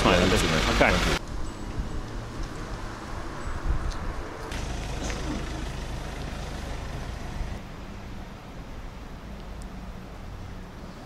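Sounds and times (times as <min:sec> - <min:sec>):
street traffic engine rumble: 0:00.0 - 0:08.2.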